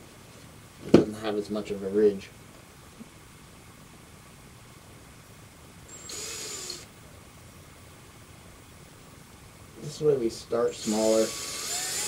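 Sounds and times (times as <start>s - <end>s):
drill biting into plastic: 5.9s - 6.9s, 10.8s - 12.0s.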